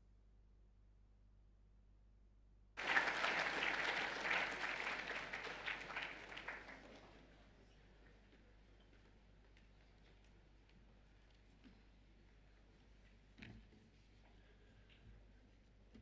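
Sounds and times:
audience applauding: 2.8 - 7.4.

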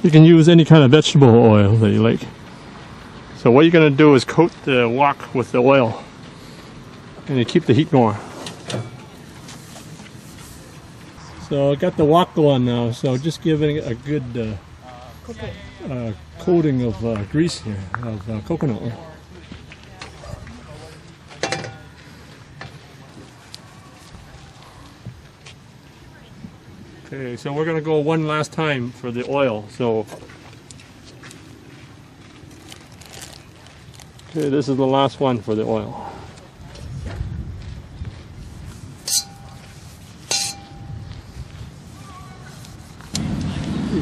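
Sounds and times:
metallic clink of wok: 40.3 - 40.9
low rumbling handling noise: 42.6 - 44.0.

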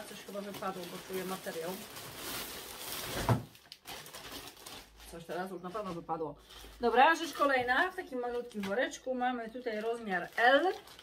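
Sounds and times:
parcel bag rustling and crinkling: 0.0 - 11.0.

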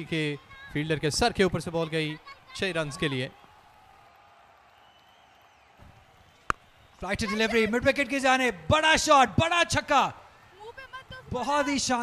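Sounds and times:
cricket bat striking ball: 5.8 - 6.8.

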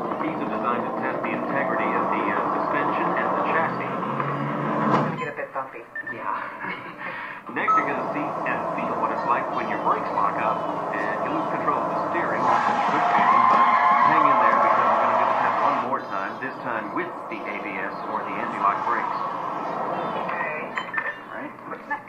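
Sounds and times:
vehicle driving: 0.0 - 5.2, 7.5 - 21.9
radio chatter: 5.3 - 13.4, 19.9 - 22.0
background voices: 7.5 - 22.0.

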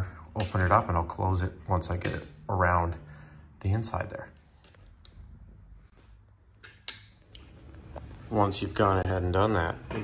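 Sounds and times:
sharp metal click: 6.6 - 7.3.

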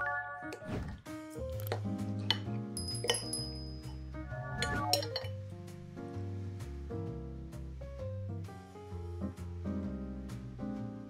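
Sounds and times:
background music: 0.0 - 11.0
cutlery clinking on ceramic plate: 2.3 - 4.0.

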